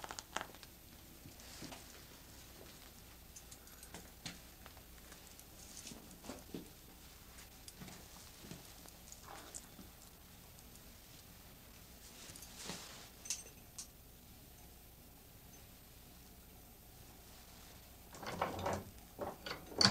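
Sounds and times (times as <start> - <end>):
soft shuffling and rustling: 0.4 - 13.6, 17.0 - 19.3.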